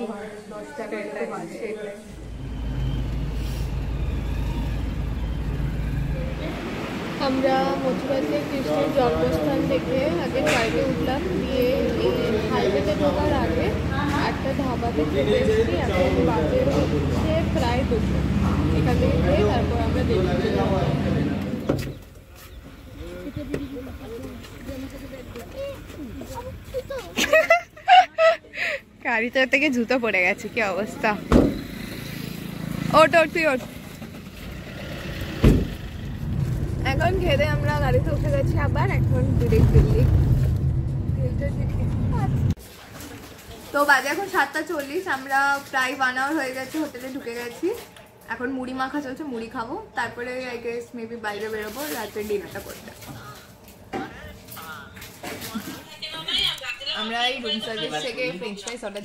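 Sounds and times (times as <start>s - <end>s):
heavy thump: 31.3s - 31.6s, 35.4s - 35.8s.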